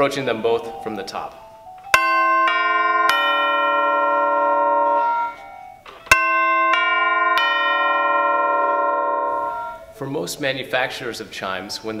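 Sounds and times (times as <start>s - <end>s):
tubular bells ringing: 0.0s - 10.3s.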